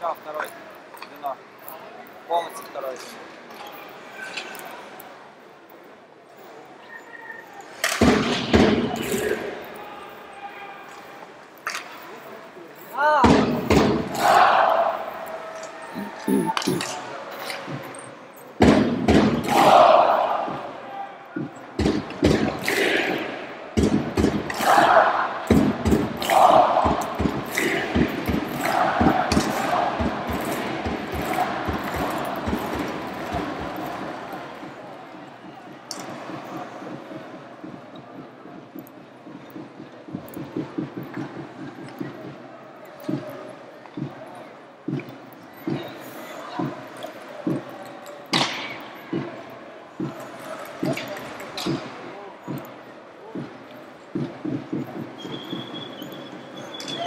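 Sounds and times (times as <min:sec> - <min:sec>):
crowd shouting and cheering: 0:06.5 - 0:57.0
hockey sticks and puck clacking: 0:07.7 - 0:09.5, 0:10.9 - 0:12.3, 0:21.7 - 0:34.8, 0:46.8 - 0:49.3, 0:50.0 - 0:52.7
knocks: 0:21.4 - 0:23.0, 0:23.8 - 0:24.9.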